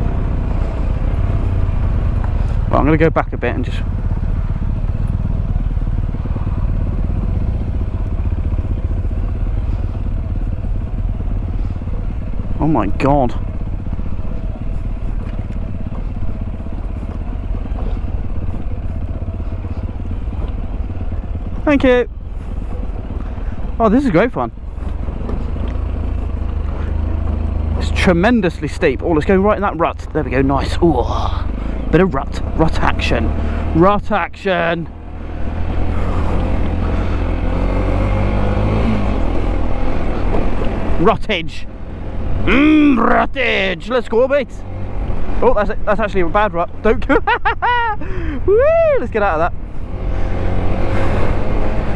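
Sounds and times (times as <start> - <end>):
motorcycle engine running: 0.0 - 48.5.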